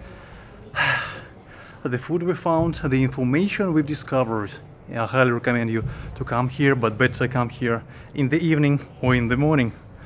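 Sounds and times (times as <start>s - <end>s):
man speaking: 1.8s - 9.9s
man breathing in: 7.9s - 8.2s.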